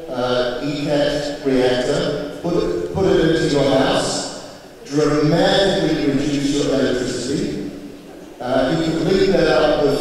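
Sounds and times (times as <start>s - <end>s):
man speaking into a microphone: 0.0s - 7.8s, 8.4s - 10.0s.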